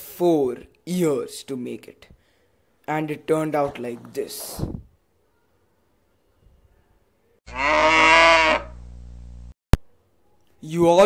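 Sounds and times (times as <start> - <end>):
cow mooing: 7.5 - 8.8
low hum: 8.7 - 9.8.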